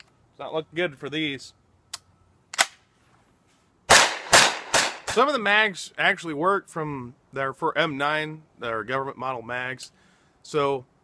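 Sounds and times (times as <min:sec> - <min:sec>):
carbine gunshots: 0:03.9 - 0:05.2.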